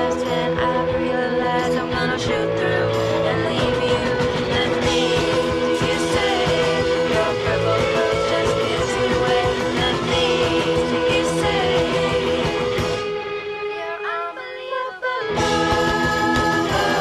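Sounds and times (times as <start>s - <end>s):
live rock band playing: 0.0s - 13.8s, 15.3s - 17.0s
held guitar notes: 0.0s - 17.0s
person singing: 0.0s - 17.0s.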